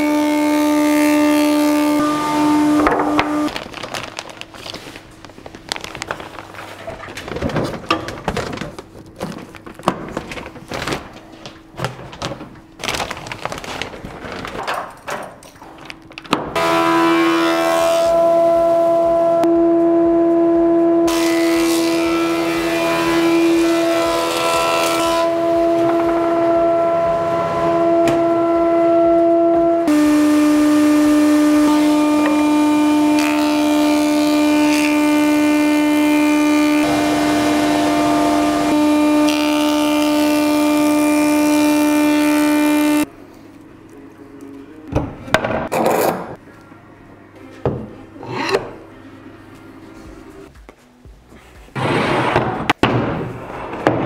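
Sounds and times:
wood planer cutting boards: 0:00.0 - 0:03.5, 0:16.3 - 0:43.1
machine hum: 0:00.0 - 0:52.8.

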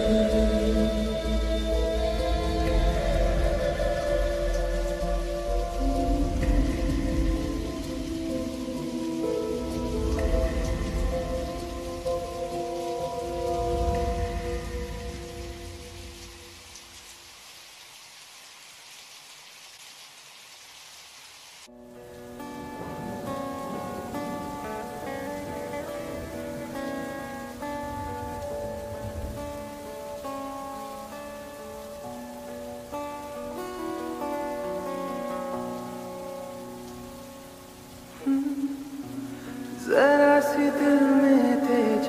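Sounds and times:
plucked guitar lofi track: 0:00.0 - 0:16.5, 0:21.7 - 0:42.0
slow lofi music: 0:00.0 - 0:17.3, 0:21.7 - 0:42.0
rain hiss: 0:00.0 - 0:42.0.

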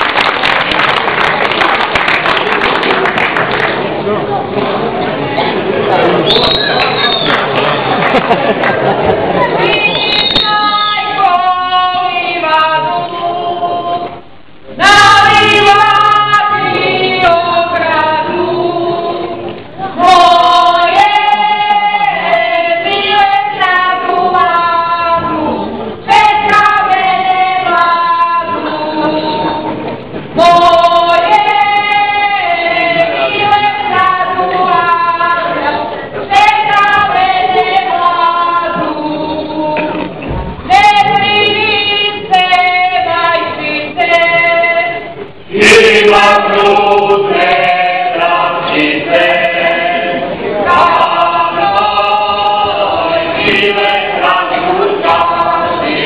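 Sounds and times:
women singing unaccompanied: 0:09.4 - 0:14.2, 0:14.8 - 0:56.0.

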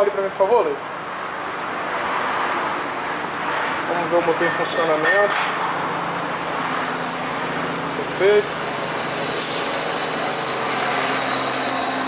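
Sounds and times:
diesel engine running: 0:05.5 - 0:12.0.

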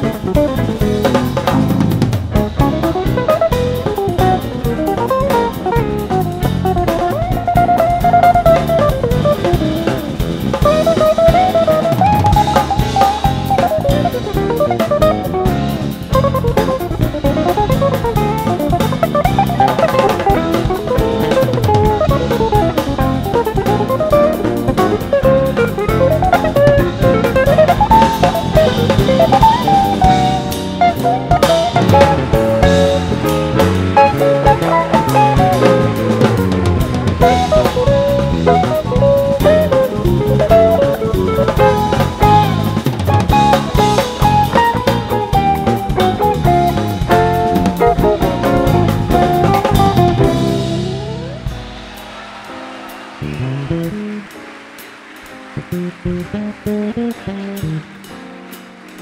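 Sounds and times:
electric guitar melody: 0:00.0 - 0:59.0
jazz band playing: 0:00.0 - 0:59.0.

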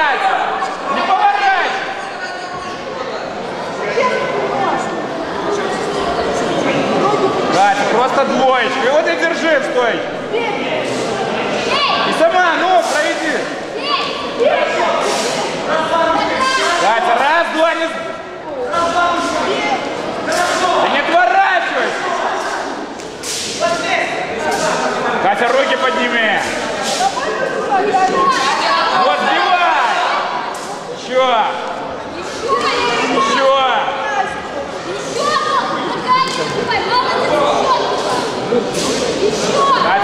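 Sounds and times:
people shouting in a hall: 0:00.0 - 0:40.0.

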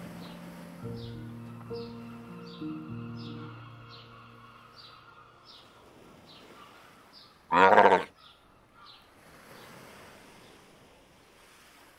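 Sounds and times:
wind: 0:00.0 - 0:11.9.

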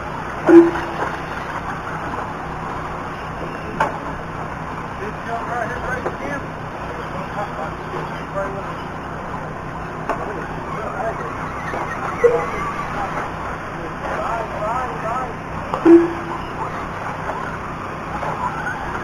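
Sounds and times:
faint distant voices: 0:00.0 - 0:19.0.

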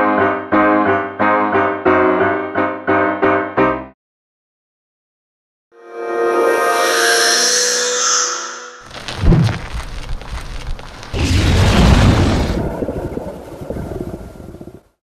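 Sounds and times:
held musical chord: 0:05.8 - 0:08.9
scraping crackling noise: 0:08.9 - 0:15.0
sudden boom: 0:09.1 - 0:09.8, 0:11.1 - 0:14.4.

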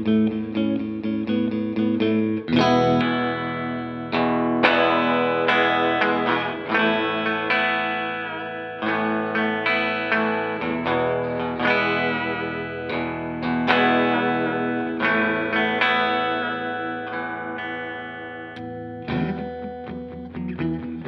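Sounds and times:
electric guitar chords strummed: 0:00.0 - 0:21.0.

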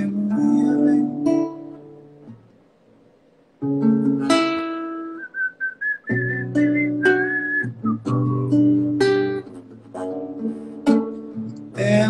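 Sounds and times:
classical guitar strummed chords: 0:00.0 - 0:02.7, 0:03.6 - 0:12.0
whistled melody: 0:05.0 - 0:09.0.

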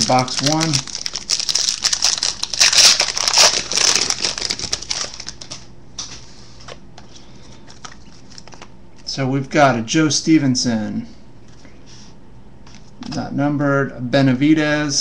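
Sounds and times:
foil wrapper tearing and crinkling: 0:00.0 - 0:05.7.

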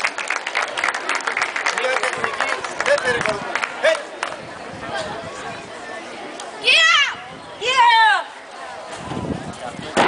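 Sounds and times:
faint crowd hubbub: 0:00.0 - 0:10.0.

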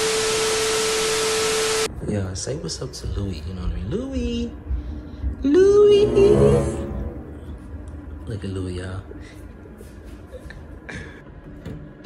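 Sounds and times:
white noise hiss: 0:00.0 - 0:03.4
steady tone: 0:05.5 - 0:08.2.

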